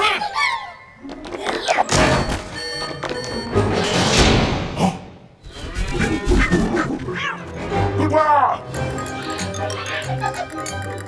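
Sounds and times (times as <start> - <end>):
light background music: 6.8 - 11.0.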